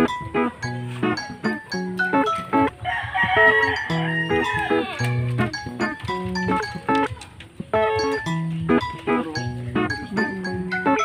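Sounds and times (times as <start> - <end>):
plucked guitar music: 0.0 - 11.0
rooster crowing: 2.7 - 5.2.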